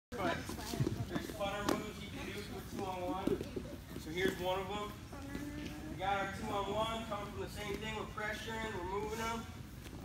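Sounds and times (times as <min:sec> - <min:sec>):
voices talking in echoing gym: 0:00.1 - 0:10.0.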